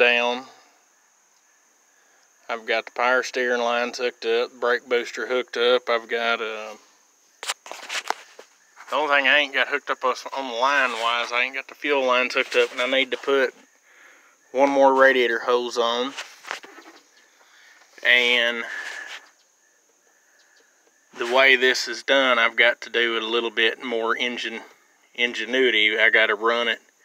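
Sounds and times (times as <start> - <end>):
soft scuffs and clicks: 7.4 - 9.0, 16.1 - 16.8
person speaking: 8.8 - 13.6, 21.2 - 24.7.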